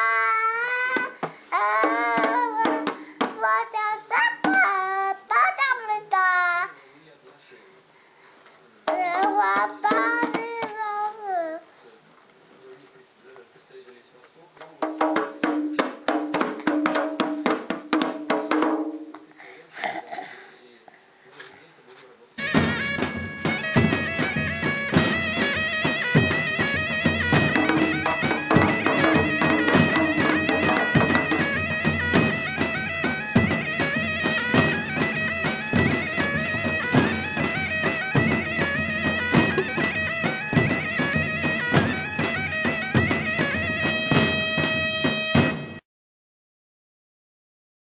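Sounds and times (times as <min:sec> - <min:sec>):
child slapping hand drum: 0:00.0 - 0:05.0, 0:08.9 - 0:11.1, 0:14.6 - 0:19.3, 0:22.4 - 0:45.8
child's voice: 0:00.0 - 0:06.8, 0:08.9 - 0:11.7
loud folk music: 0:01.6 - 0:03.5, 0:08.9 - 0:10.9, 0:22.4 - 0:45.8.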